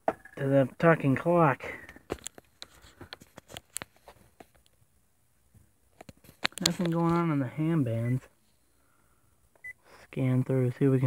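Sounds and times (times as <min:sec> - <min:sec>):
small handling clicks and taps: 0:06.0 - 0:07.2.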